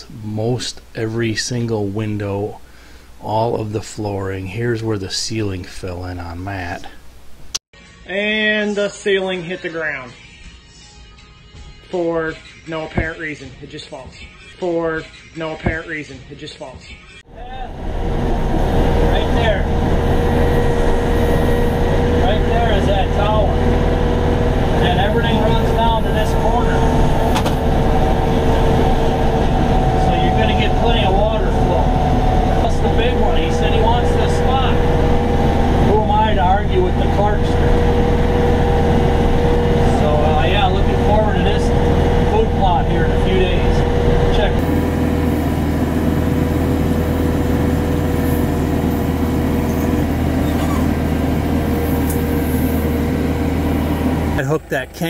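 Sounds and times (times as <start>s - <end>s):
man talking: 0.0s - 7.0s, 19.1s - 19.7s, 22.2s - 23.6s, 24.8s - 27.0s, 29.9s - 34.9s, 35.8s - 37.7s, 39.8s - 44.6s, 54.4s - 55.0s
steady engine drone: 17.3s - 55.0s
tractor engine running: 17.7s - 55.0s.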